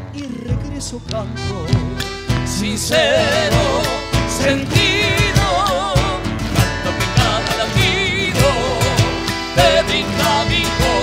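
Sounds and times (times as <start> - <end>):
guitar strummed: 0.0 - 11.0.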